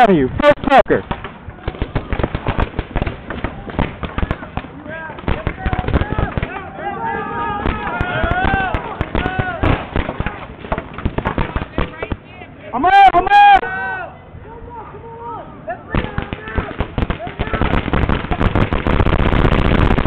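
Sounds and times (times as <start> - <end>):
players shouting: 3.2 - 10.8, 11.4 - 18.6.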